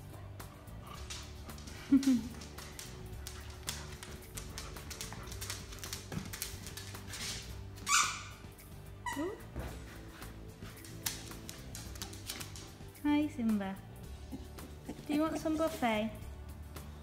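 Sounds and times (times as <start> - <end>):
background music: 0.0 - 17.0
dog whining and yelping: 7.8 - 9.5.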